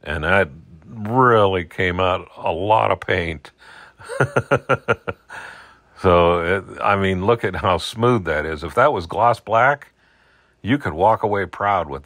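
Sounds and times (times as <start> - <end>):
soft breath: 3.6 - 4.0, 5.3 - 6.0, 9.9 - 10.6
man laughing in short chuckles: 4.0 - 5.5.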